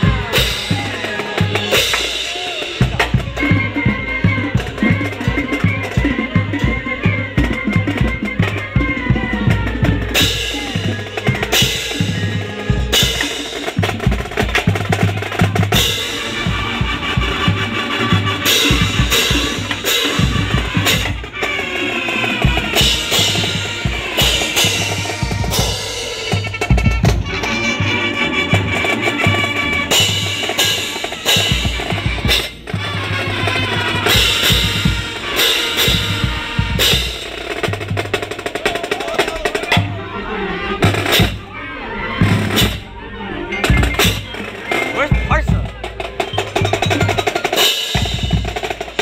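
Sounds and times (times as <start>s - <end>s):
snare drums beating: 0.0s - 40.0s, 43.6s - 49.0s
bass drums beating: 0.0s - 43.0s, 43.6s - 49.0s
brass: 0.0s - 49.0s
marching band playing: 0.0s - 49.0s.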